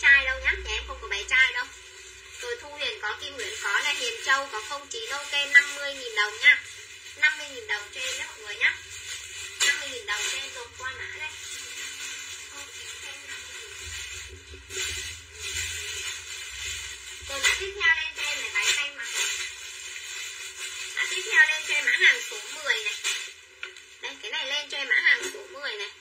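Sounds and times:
indistinct speech: 0.0s - 1.7s, 7.2s - 8.8s, 9.6s - 11.6s, 17.3s - 19.2s, 21.0s - 23.0s, 24.0s - 26.0s.

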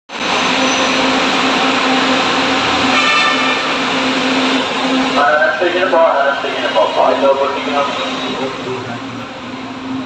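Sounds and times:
higher whine: 0.1s - 10.0s
light rail train rushing noise: 0.1s - 10.0s.

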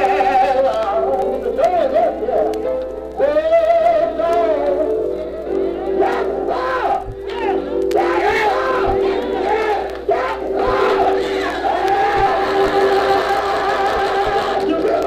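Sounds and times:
congregation singing a hymn: 5.8s - 15.0s.

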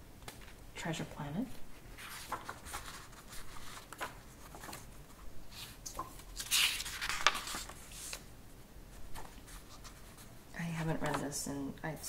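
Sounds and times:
woman speaking softly: 0.8s - 1.6s, 10.6s - 12.0s
book pages turning: 1.8s - 8.3s, 9.0s - 11.3s.

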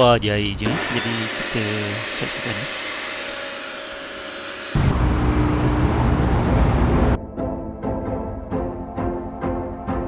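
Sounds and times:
pressure washer motor and pump running: 0.6s - 7.2s
loud deep rumble: 4.8s - 7.2s.

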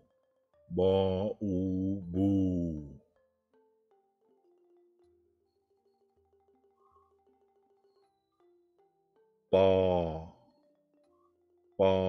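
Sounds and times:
teacher sounding out syllables: 0.7s - 2.9s.

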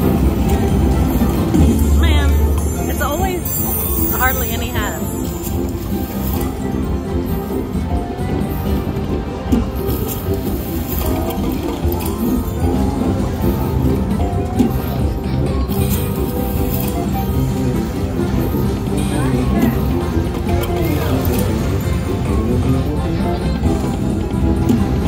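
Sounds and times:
slot machine bonus music: 0.0s - 25.0s
slot reels spinning and stopping: 9.8s - 24.2s.

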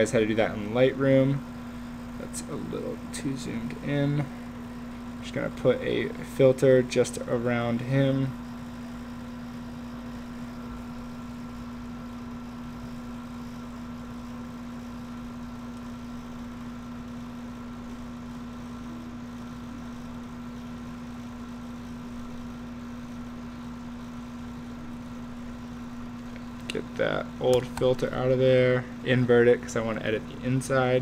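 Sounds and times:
steady low background hum: 0.0s - 31.0s.

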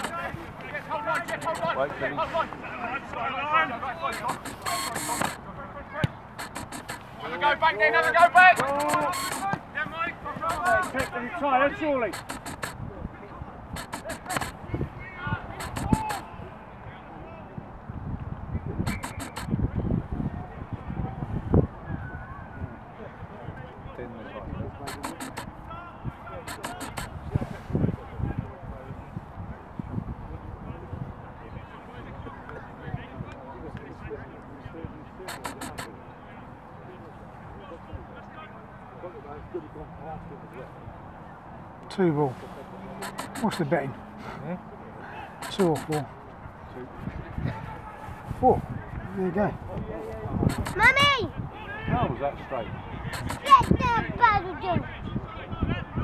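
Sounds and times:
sharp taps: 0.0s - 0.3s, 1.1s - 1.8s, 4.1s - 5.4s, 6.0s - 7.1s, 8.0s - 9.7s, 10.4s - 11.2s, 12.1s - 12.8s, 13.8s - 14.6s, 15.6s - 16.3s, 18.9s - 19.5s, 24.9s - 25.6s, 26.5s - 27.2s, 35.3s - 35.9s, 43.0s - 43.7s, 45.4s - 46.1s, 50.5s - 51.0s, 53.2s - 53.8s
distant shouting voices: 0.0s - 12.8s, 13.4s - 17.6s, 50.6s - 56.0s.

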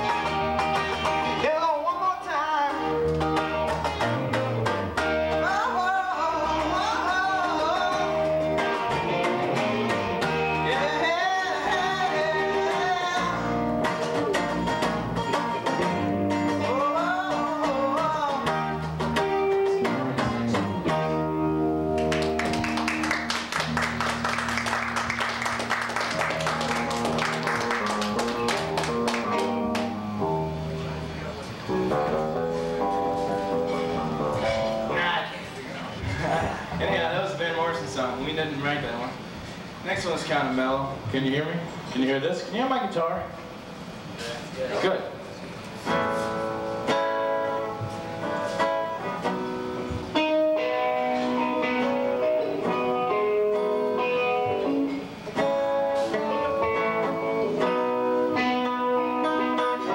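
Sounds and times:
acoustic and electric guitars: 0.0s - 59.9s
man singing: 1.4s - 3.0s, 5.4s - 8.3s, 9.0s - 13.6s, 16.5s - 18.8s.

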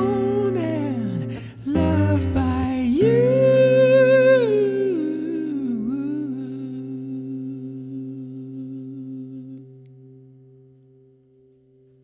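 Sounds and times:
soft hummed vocal: 3.0s - 9.8s.

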